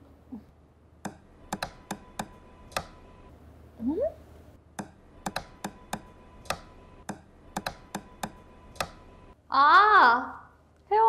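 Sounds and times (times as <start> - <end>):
computer keys clicking: 1.0 - 3.0.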